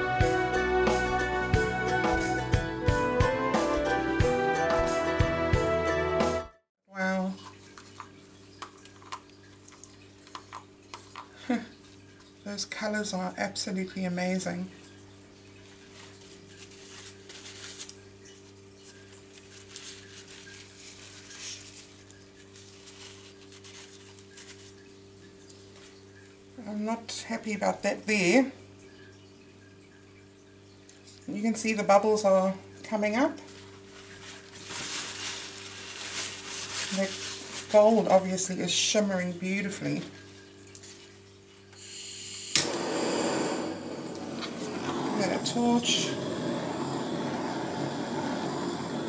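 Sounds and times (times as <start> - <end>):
soft ticks and pattering: 7.4 - 12.4, 14.8 - 26.3
torch flame hissing: 41.8 - 49.0
steady low hum: 42.6 - 49.0.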